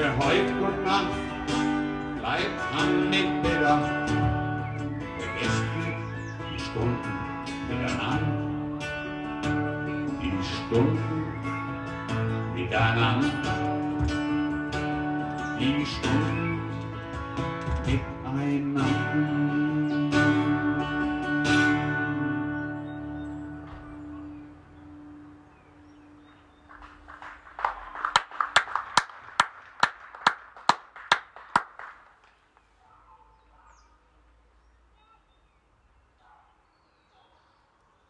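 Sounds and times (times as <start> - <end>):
acoustic guitar strumming: 0.0 - 26.3
hand clapping: 26.7 - 32.5.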